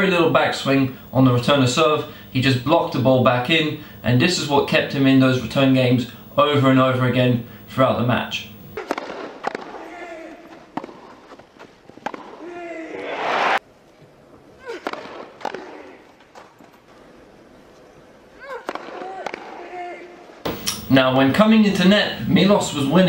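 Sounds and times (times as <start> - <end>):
racket hitting ball: 8.8 - 13.1, 14.6 - 16.6, 18.4 - 20.9
crowd noise: 12.3 - 13.6.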